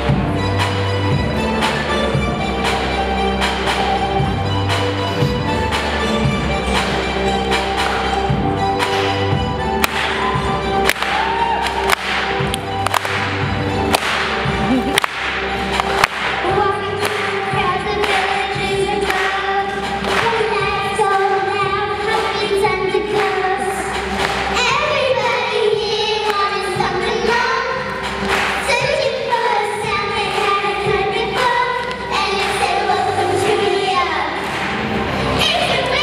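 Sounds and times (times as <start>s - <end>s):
backing track with steady beat: 0.0s - 36.0s
girls singing into microphones: 16.2s - 34.6s.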